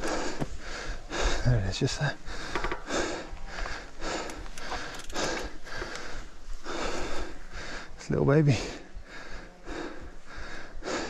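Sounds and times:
man panting heavily: 0.0s - 11.0s.

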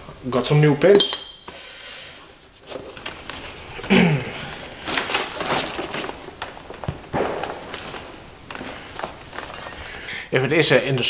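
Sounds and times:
cardboard rustling and scraping: 2.3s - 10.1s.

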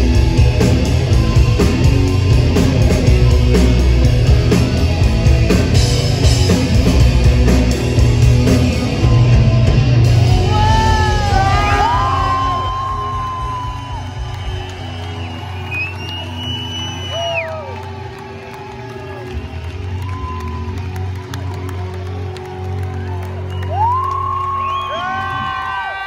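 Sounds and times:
crowd cheering and whooping: 0.0s - 4.4s, 8.8s - 26.0s
rock band playing live: 0.0s - 23.0s.

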